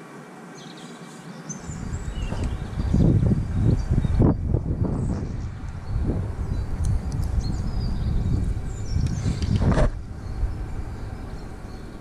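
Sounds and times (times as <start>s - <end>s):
faint bird chirps: 0.5s - 12.0s
wind buffeting microphone: 1.6s - 12.0s.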